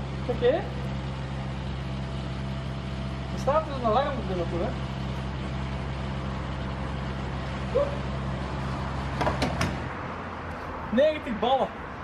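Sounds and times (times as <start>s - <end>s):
nozzle clicks and knocks: 9.2s - 9.9s.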